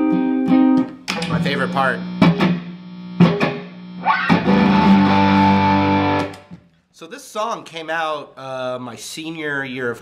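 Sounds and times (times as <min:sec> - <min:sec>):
electric guitar strums: 0:00.0 - 0:06.6.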